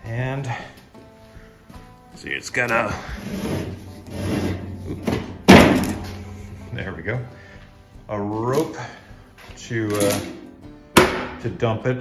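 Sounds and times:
lawn sweeper hopper scraping: 3.0s - 5.2s.

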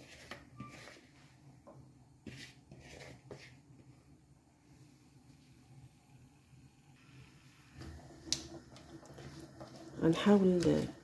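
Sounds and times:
potatoes sizzling in oil: 6.4s - 11.0s.

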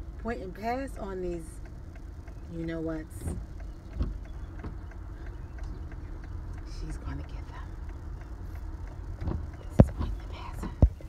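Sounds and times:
van engine and tyres rumbling: 0.0s - 11.0s.

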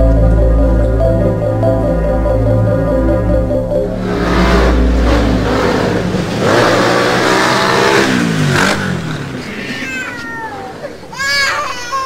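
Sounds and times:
whoosh with gliding tones: 0.0s - 9.4s
infant crying: 9.5s - 12.0s.

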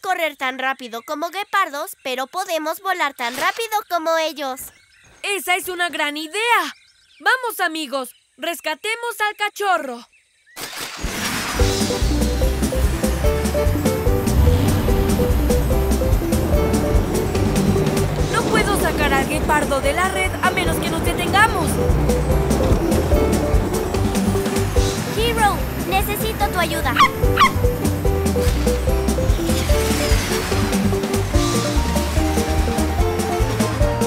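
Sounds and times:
fast action music with bass: 11.6s - 34.0s
cartoon dog barking: 26.7s - 27.7s.

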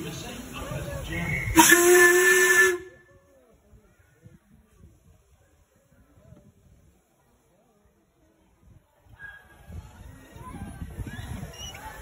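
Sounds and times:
steam hissing: 0.0s - 2.9s
steam whistle blast: 1.5s - 3.0s.

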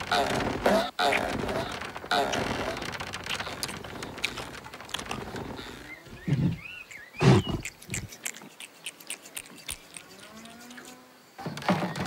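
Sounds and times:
small clicks: 0.0s - 6.0s.

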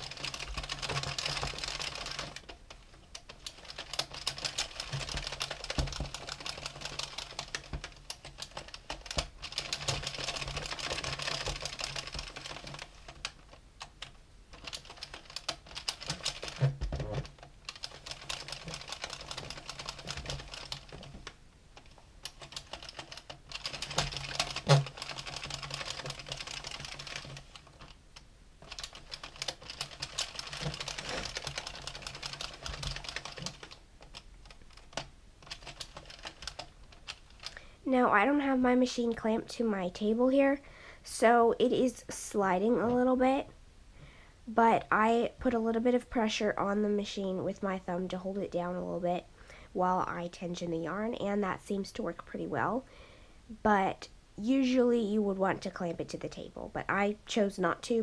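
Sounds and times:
knitting machine needles clattering: 0.0s - 28.0s, 28.6s - 37.6s.

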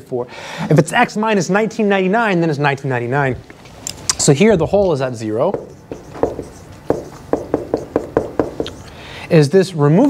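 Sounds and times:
marker writing on a whiteboard: 5.3s - 9.0s.

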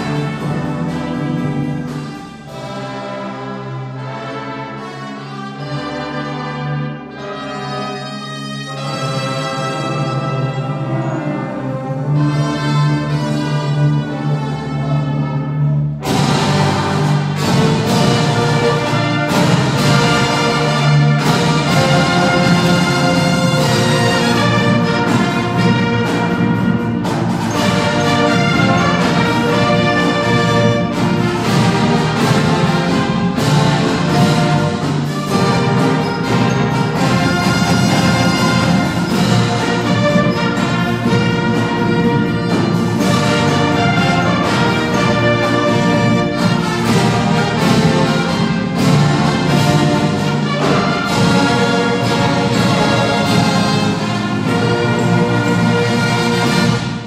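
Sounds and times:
brass band playing: 0.0s - 57.0s
marching snare drums: 16.0s - 57.0s.

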